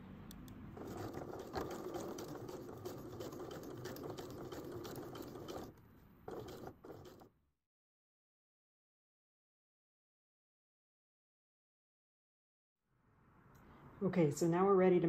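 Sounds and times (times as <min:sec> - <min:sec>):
sewing machine stitching: 0:00.8 - 0:07.3.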